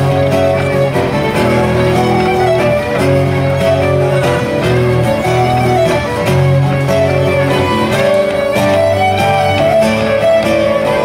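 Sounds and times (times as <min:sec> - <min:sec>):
fiddle melody: 0:00.0 - 0:11.0
strummed guitar: 0:00.0 - 0:11.0.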